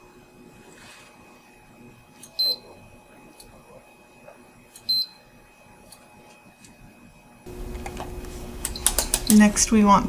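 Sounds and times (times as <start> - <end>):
multimeter short high beeps: 2.2 - 2.8, 4.8 - 5.3.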